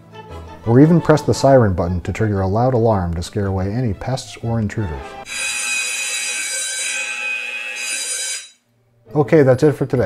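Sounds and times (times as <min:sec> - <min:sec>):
shrill electronic alarm siren: 0:05.3 - 0:08.6.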